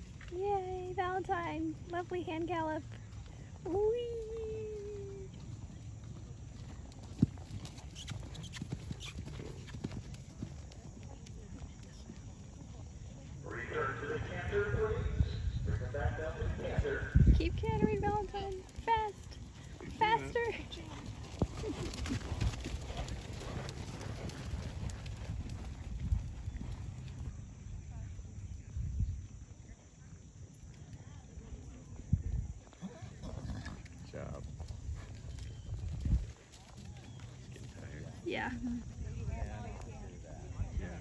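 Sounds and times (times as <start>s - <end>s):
horse hoofbeats on dirt: 0.0s - 13.1s, 16.3s - 27.9s, 32.6s - 39.0s.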